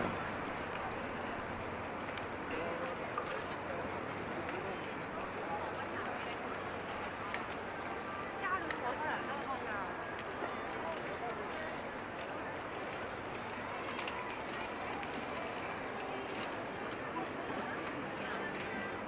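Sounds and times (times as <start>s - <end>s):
passers-by talking: 0.0s - 19.0s.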